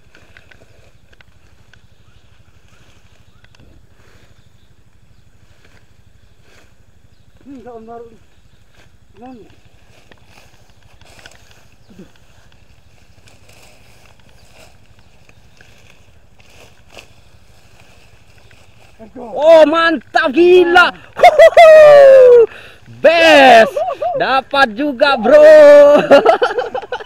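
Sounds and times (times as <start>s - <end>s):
low steady background noise: 0.0s - 27.0s
rustling through tall grass: 0.0s - 27.0s.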